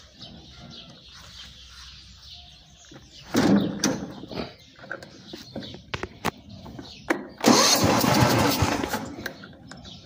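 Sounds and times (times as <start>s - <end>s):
engine cranking: 7.4s - 10.0s.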